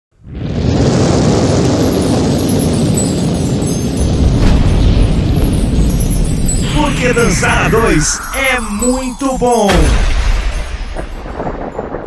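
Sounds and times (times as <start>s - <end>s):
loud dense rumbling: 0.2s - 12.0s.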